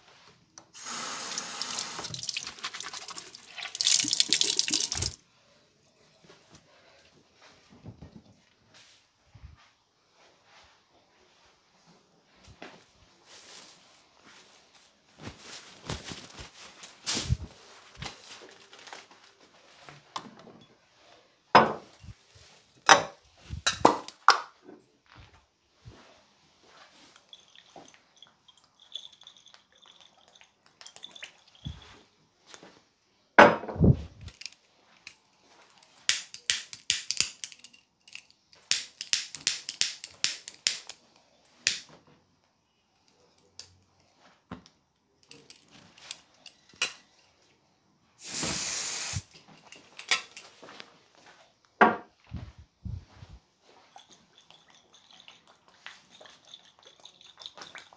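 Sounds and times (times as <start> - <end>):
aerosol spray can hissing: 0.8 - 2.4, 48.2 - 49.3
handling knocks and clicks: 33.6 - 41.0.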